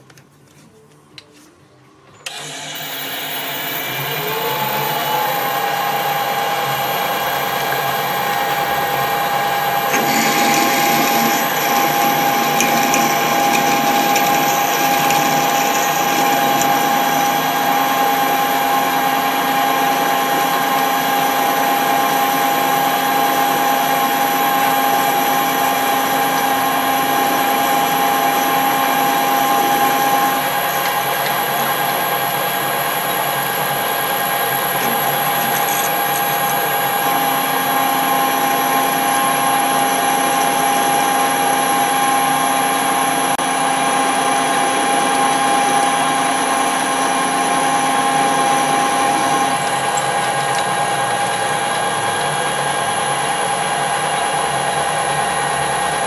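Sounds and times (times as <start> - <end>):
drill boring into steel: 2.2 - 56.0
metal lathe whine: 2.2 - 56.0.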